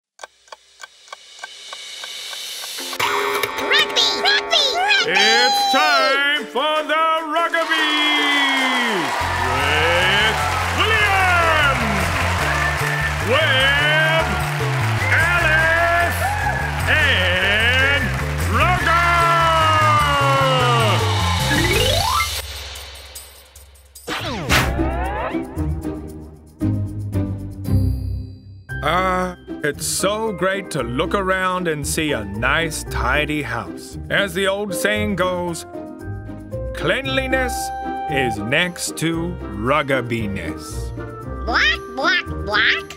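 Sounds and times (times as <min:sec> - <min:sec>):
clock ticking: 0:00.2 - 0:04.0
tv theme song: 0:00.2 - 0:42.9
cartoon bird voice calling: 0:41.5 - 0:42.9.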